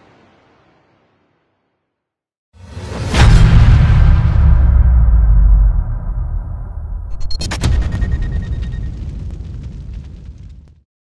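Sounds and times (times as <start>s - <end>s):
deep cinematic boom rumble: 3.2s - 10.6s.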